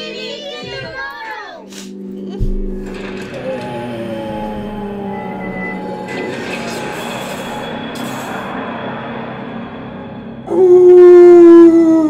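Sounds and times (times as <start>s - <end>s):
soft music: 0.0s - 8.6s
held tone sliding down in pitch: 3.6s - 7.7s.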